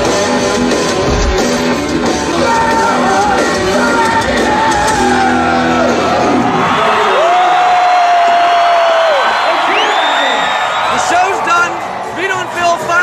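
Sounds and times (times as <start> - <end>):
rock band playing live: 0.0 - 7.0.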